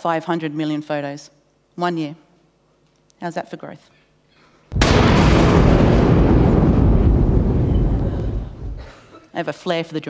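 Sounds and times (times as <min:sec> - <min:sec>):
low thunder rumble: 0:04.7 - 0:08.9.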